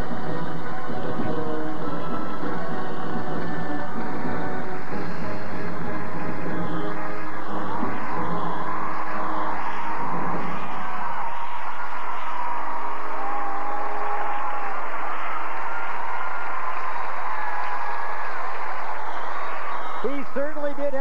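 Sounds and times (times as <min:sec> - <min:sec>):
crowd applauding: 0:00.0 - 0:21.0.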